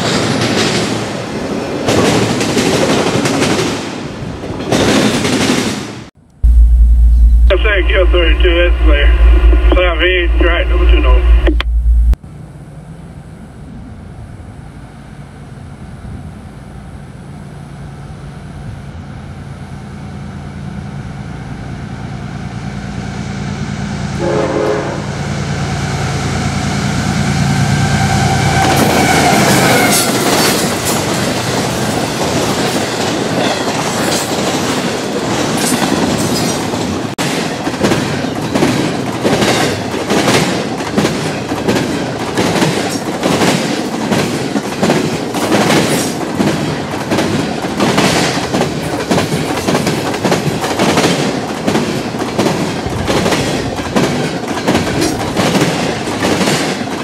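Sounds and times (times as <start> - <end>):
diesel locomotive rumble: 6.2 - 33.3, 47.0 - 56.4
train horn: 24.1 - 25.3, 27.4 - 30.3
wheels clacking over rail joints: 28.6 - 57.0.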